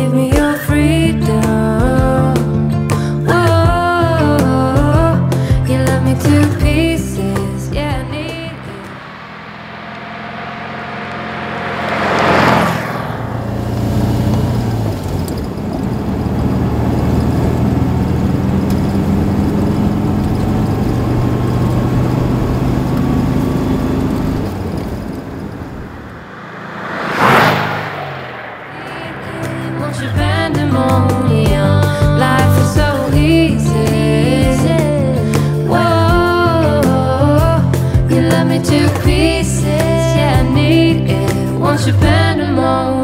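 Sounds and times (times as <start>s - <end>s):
car engine running on board: 5.7s - 27.6s
car driving past: 6.0s - 34.0s.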